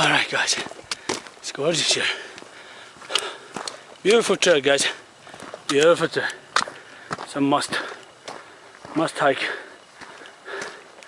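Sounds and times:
footsteps scuffing on dirt: 0.0 - 11.0
person breathing: 2.0 - 4.0, 6.4 - 11.0.

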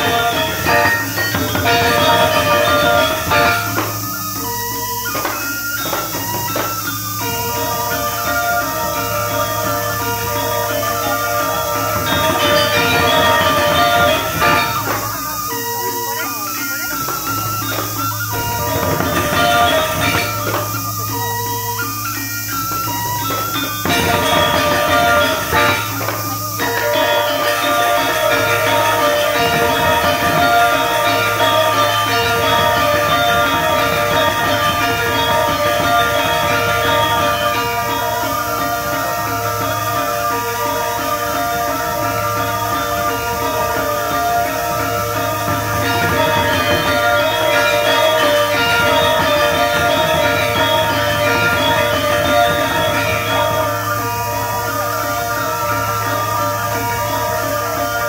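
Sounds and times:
metallophones playing fast figures: 0.0 - 58.0.

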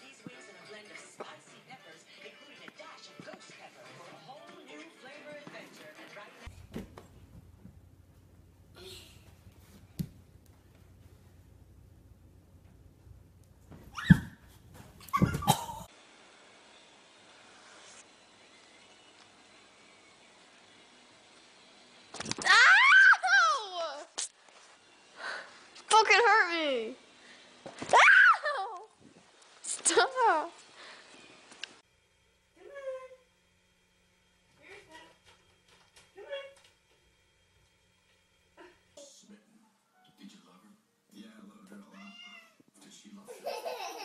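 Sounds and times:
cat meowing: 41.9 - 42.6.

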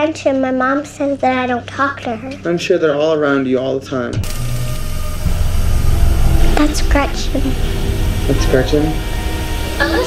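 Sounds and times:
low rumble: 4.2 - 10.0.

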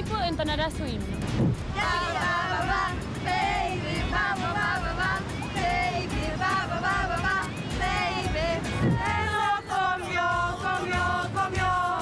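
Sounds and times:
low steady beat: 0.0 - 9.4
young women singing together: 1.7 - 12.0.

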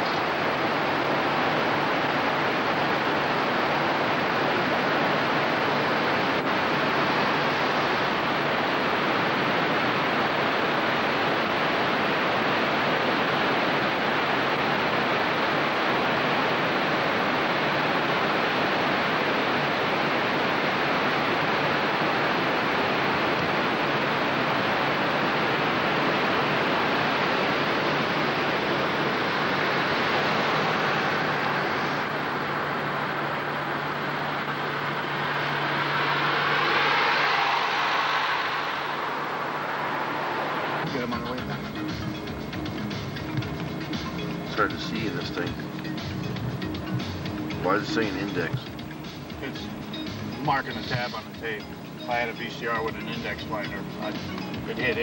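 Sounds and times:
low engine tone: 0.0 - 55.0.

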